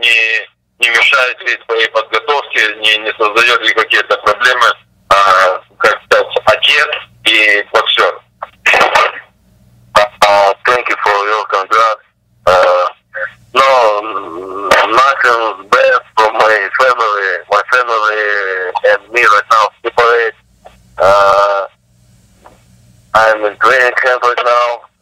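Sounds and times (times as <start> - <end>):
person talking over telephone: 0.0 - 9.3, 9.9 - 21.8, 23.1 - 25.0.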